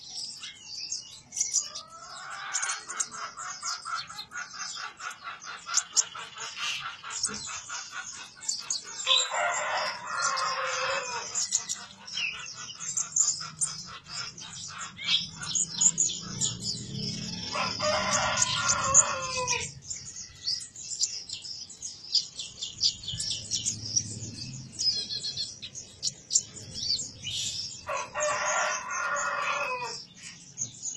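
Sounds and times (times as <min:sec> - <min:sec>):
rooster crowing: 0:09.0 - 0:11.6, 0:16.6 - 0:19.8, 0:27.8 - 0:30.1.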